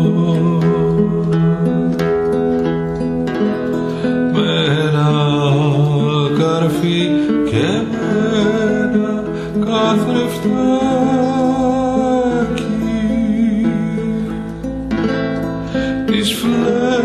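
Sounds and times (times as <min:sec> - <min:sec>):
person singing: 0:00.0 - 0:03.0, 0:03.7 - 0:14.8, 0:15.6 - 0:17.0
acoustic guitar: 0:00.0 - 0:17.0.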